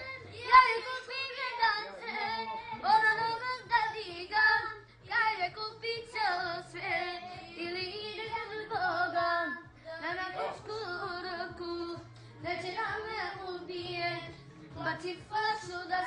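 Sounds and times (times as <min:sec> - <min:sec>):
faint low backing notes: 0:00.0 - 0:16.0.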